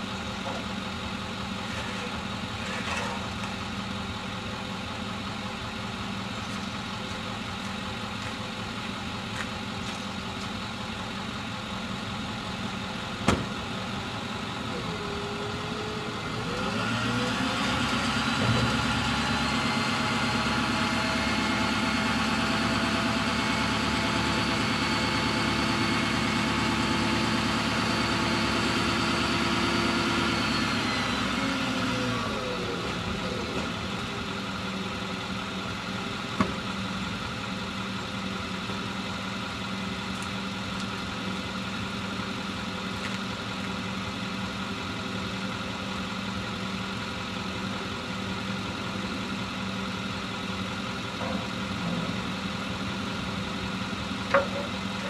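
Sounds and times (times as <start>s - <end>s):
truck engine idling: 0.0s - 55.0s.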